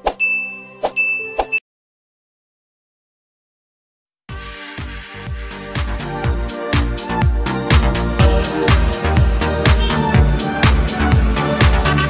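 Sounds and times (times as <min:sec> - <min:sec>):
held synth chord: 0:07.5 - 0:12.0.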